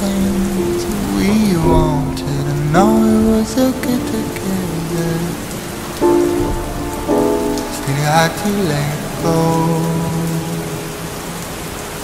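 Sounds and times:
slow song with held note: 0:00.0 - 0:11.4
falling rain: 0:00.0 - 0:12.0.

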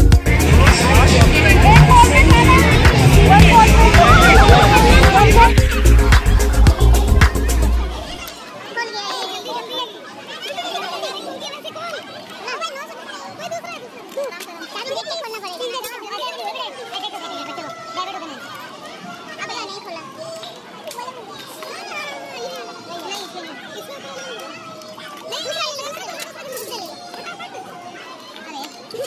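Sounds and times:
loud music with heavy beat: 0:00.0 - 0:08.2
children chattering in a crowd: 0:00.0 - 0:29.0.

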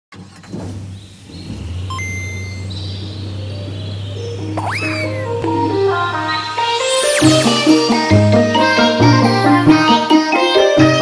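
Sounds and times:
low bass drone: 0:01.2 - 0:09.2
short electronic beeps: 0:01.9 - 0:02.7, 0:04.6 - 0:05.3
held high tone: 0:04.5 - 0:09.2.

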